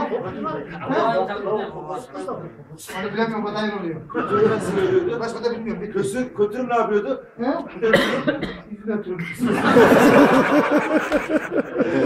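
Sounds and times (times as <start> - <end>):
men talking: 0.0 - 12.0
person coughing: 7.9 - 8.7.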